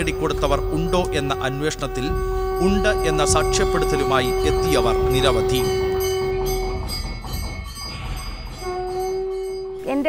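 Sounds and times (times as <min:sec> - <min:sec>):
temple bells ringing: 0:00.0 - 0:10.0.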